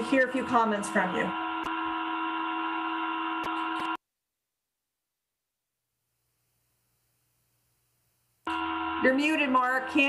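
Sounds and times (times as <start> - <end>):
electrical hum: 0.0 - 4.0, 6.0 - 10.0.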